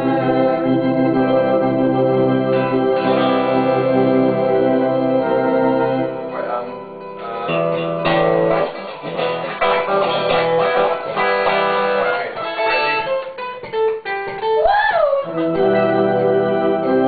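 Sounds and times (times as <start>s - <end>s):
guitars playing chords: 0.0s - 17.0s.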